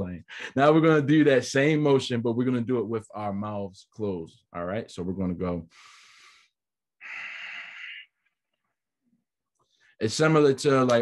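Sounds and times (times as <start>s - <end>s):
man breathing through nose: 5.7s - 8.2s.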